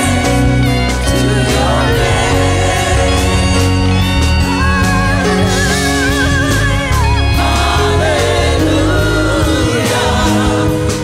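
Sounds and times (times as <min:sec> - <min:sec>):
many voices singing together: 0:00.0 - 0:04.6, 0:05.2 - 0:11.0
worship band: 0:00.0 - 0:11.0.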